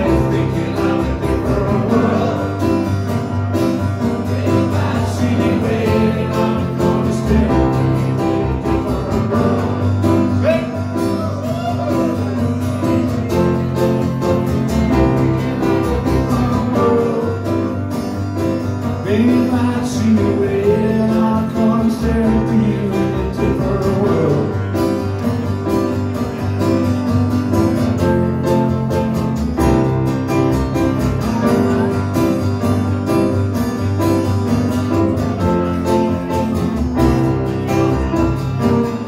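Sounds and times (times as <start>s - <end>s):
person singing: 0.0s - 3.2s, 4.1s - 12.6s, 13.2s - 17.8s, 19.0s - 24.9s
acoustic guitars strumming: 0.0s - 39.0s.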